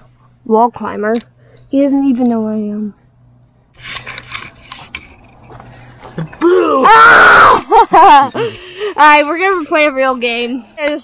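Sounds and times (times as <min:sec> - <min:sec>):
camera handling rustling: 0:03.8 - 0:06.1.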